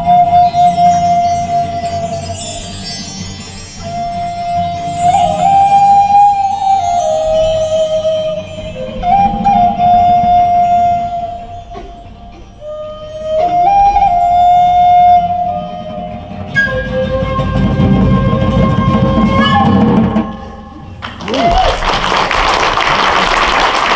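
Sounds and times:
hand drum: 0.0 - 21.7
wooden flute melody: 0.0 - 22.0.

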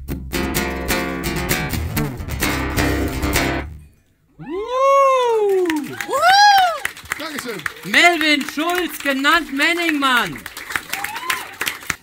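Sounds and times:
person's drawn-out whooping cry: 4.4 - 6.8.

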